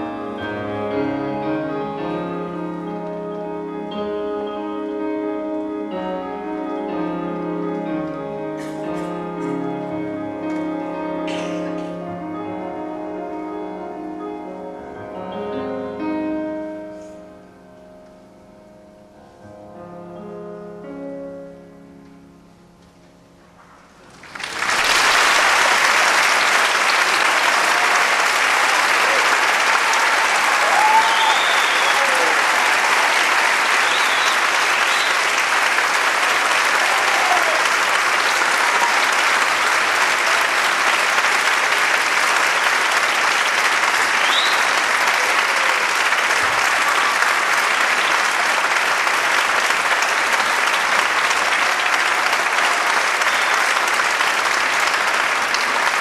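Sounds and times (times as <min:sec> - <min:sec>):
audience applauding: 0:24.0 - 0:56.0
audience calls: 0:24.0 - 0:56.0.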